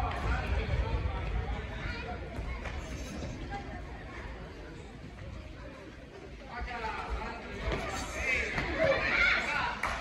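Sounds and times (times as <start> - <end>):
people shouting in a hall: 7.9 - 10.0.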